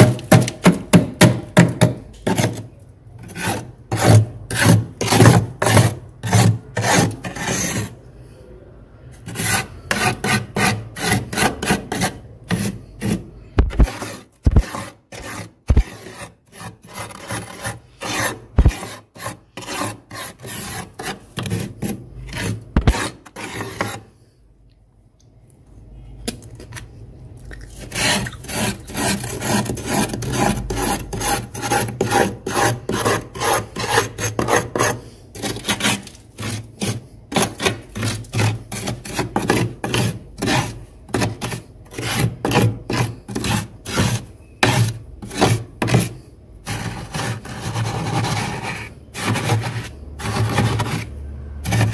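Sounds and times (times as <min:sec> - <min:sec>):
metal utensil scraping frost: 0:32.7 - 0:51.9.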